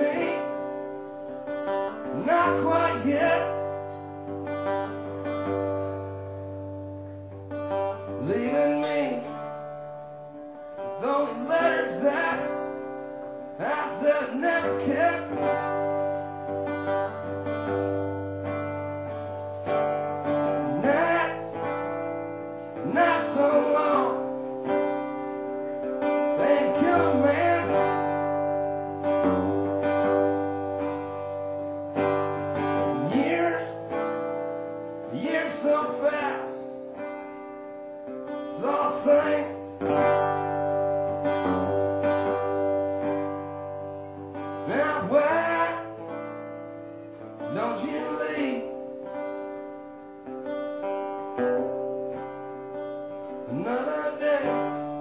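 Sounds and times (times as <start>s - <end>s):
man singing: 0.0s - 4.1s, 8.1s - 9.9s, 10.8s - 16.5s, 19.8s - 30.9s, 32.0s - 37.1s, 38.4s - 40.5s, 44.3s - 46.6s, 47.3s - 49.3s, 53.3s - 55.0s
acoustic guitar strummed: 0.0s - 55.0s.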